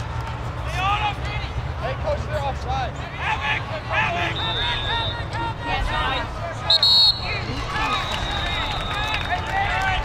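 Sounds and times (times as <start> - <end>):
distant people shouting: 3.0 - 10.0.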